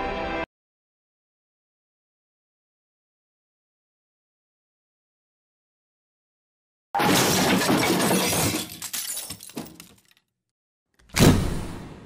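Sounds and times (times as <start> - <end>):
loud shattering crash: 7.0 - 9.9
pieces clattering: 7.0 - 10.3.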